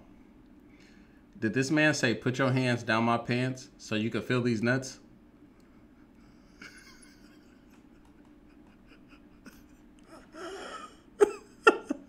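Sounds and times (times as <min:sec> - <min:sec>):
man wheezing laughter: 0:06.1 - 0:12.0.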